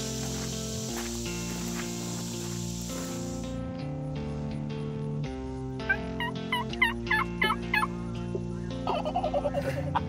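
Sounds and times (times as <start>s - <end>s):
wild turkey calling: 5.8s - 9.6s.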